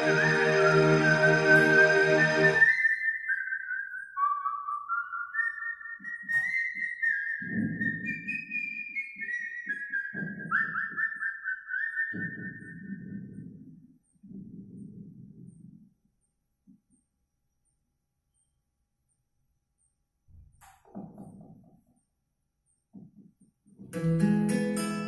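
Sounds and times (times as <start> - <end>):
person whistling a melody: 0.0 - 13.4.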